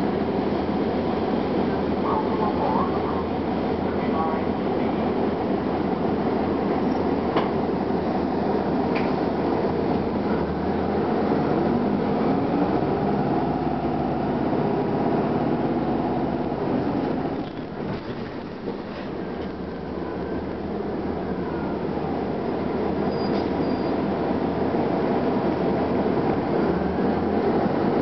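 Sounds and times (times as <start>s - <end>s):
bus diesel engine drone: 0.0s - 28.0s.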